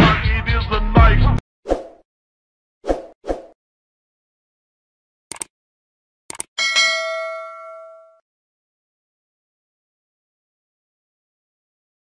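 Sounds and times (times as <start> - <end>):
notification bell ding: 6.6 - 8.2.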